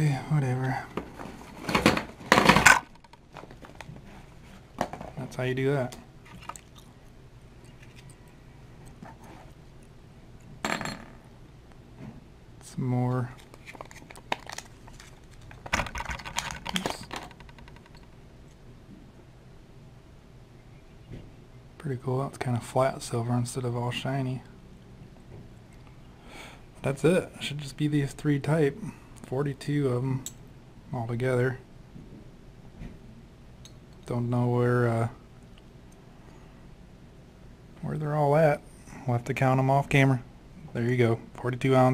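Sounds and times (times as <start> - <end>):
faint handling sounds: 0.2 - 10.5, 11.8 - 18.6.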